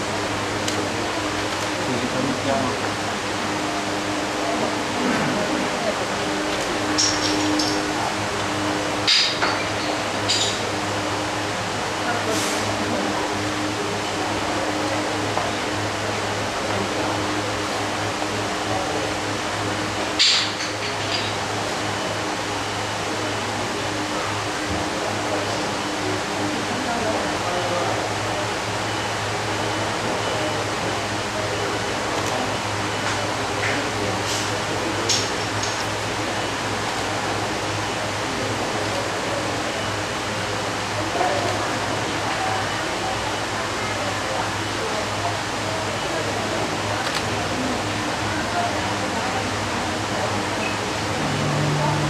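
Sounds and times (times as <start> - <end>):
indistinct voices: 0.0 - 52.0.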